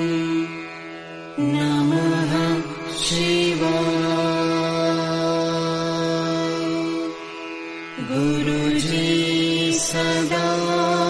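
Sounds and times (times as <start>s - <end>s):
person chanting: 0.0s - 11.0s.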